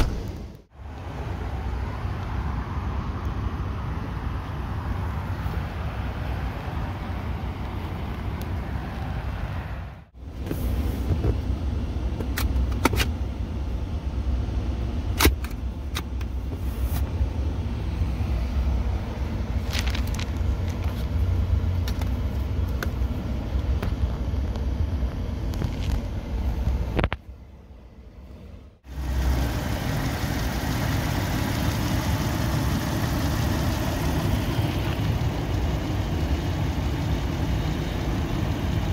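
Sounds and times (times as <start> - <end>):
truck engine idling: 28.9 - 38.9.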